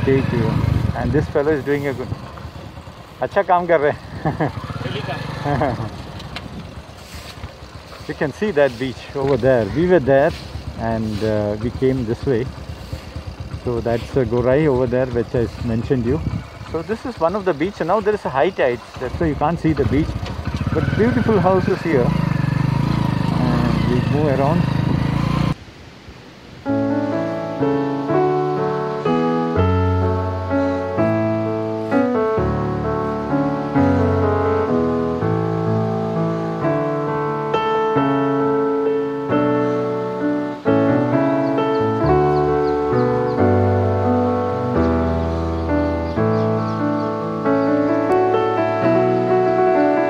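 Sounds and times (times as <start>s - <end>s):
keyboard music: 0.0s - 2.0s, 3.7s - 16.2s, 20.1s - 25.6s, 26.6s - 50.0s
man speaking: 0.0s - 2.2s, 3.2s - 4.0s, 4.6s - 5.7s, 8.0s - 12.5s, 13.6s - 22.3s, 23.3s - 24.7s
motorcycle engine idling: 0.0s - 25.6s, 39.6s - 50.0s.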